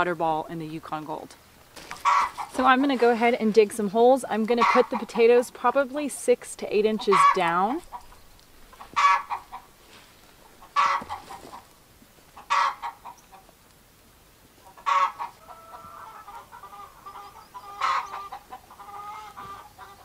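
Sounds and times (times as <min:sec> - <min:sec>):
chickens clucking: 0:00.9 - 0:13.7, 0:14.6 - 0:20.0
chicken squawking: 0:01.9 - 0:02.6, 0:04.5 - 0:05.2, 0:07.0 - 0:09.8, 0:10.4 - 0:11.7, 0:12.4 - 0:13.4, 0:14.6 - 0:20.0.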